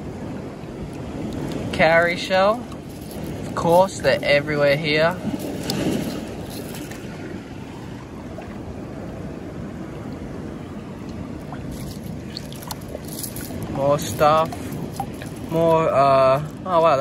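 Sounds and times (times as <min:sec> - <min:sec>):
seawater washing over rocks: 0:00.8 - 0:17.0.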